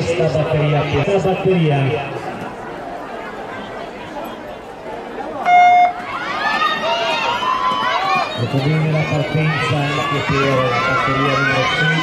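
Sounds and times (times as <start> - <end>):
crowd murmur: 0.0 - 12.0
spectators' voices rising: 0.0 - 12.0
electronic start beep: 5.5 - 6.0.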